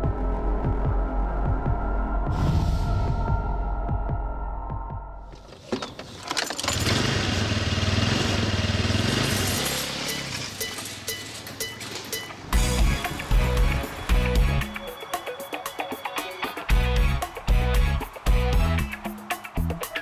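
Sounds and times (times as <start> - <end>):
soundtrack music with throbbing pulse: 0.0 - 5.4, 12.6 - 20.0.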